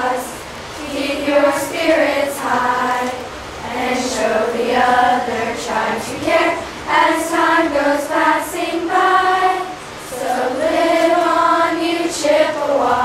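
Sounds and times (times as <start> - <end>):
girls choir singing: 0.0 - 13.0.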